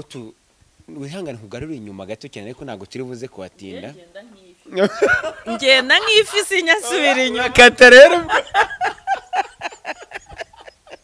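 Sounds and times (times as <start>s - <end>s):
woman laughing: 4.7s - 11.0s.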